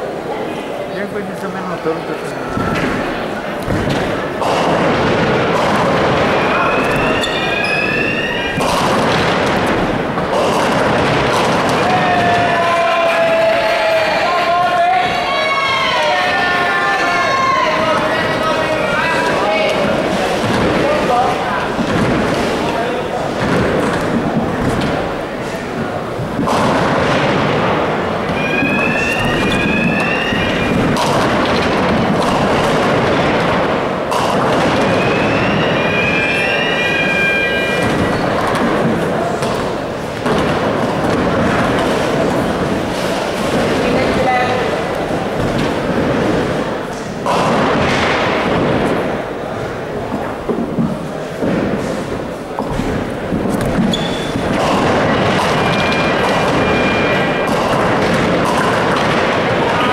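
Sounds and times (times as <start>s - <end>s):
crowd chatter: 0.0s - 59.9s
bowling balls rumbling on lanes: 1.0s - 59.9s
high squeaks: 6.3s - 8.8s, 28.3s - 30.9s, 34.9s - 38.4s, 53.9s - 54.4s.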